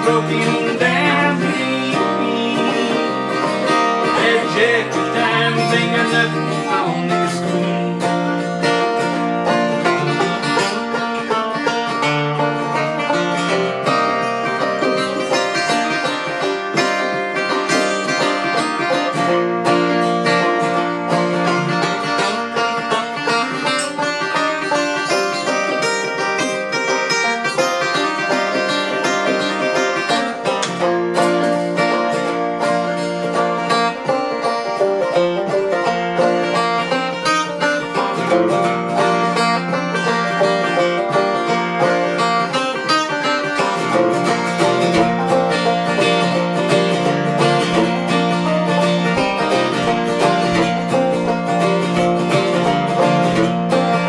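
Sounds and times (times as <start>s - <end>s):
acoustic guitar: 0.0s - 54.0s
banjo: 0.0s - 54.0s.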